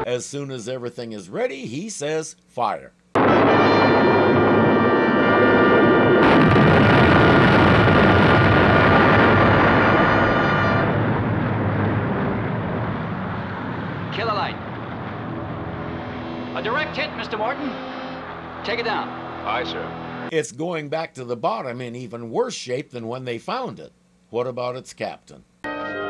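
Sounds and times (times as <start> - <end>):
dramatic music chord: 3.2 - 6.9, 15.2 - 20.3, 25.7 - 26.0
loud rumbling explosion: 3.2 - 17.3.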